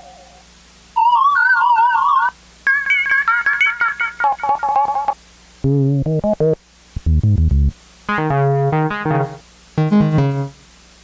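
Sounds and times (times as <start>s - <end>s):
synthesizer fast repeated notes: 5.6s - 10.6s
synthesizer lead with vibrato: 7.1s - 10.6s.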